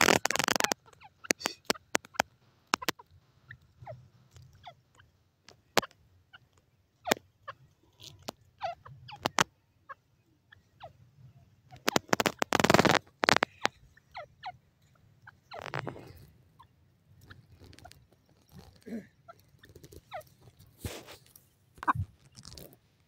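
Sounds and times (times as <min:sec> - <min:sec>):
bird pecking dry ground: 0:00.0 - 0:09.5, 0:11.6 - 0:23.0.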